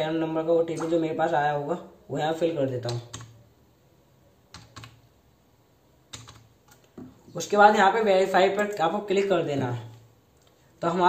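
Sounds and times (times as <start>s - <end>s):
computer keyboard keystrokes: 0.8s - 1.0s, 2.8s - 3.4s, 4.5s - 5.0s, 6.1s - 6.9s.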